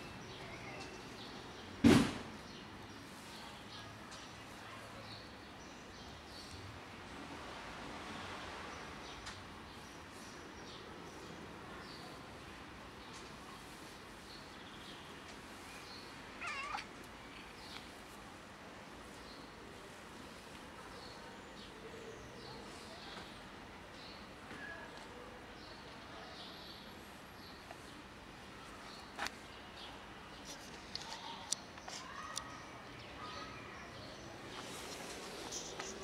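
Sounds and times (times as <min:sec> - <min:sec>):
cat meowing: 0:16.4 - 0:16.9.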